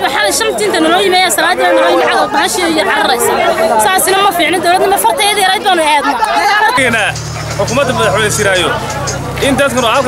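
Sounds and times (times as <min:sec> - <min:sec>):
woman speaking: 0:00.0 - 0:06.8
crowd chattering: 0:00.0 - 0:10.0.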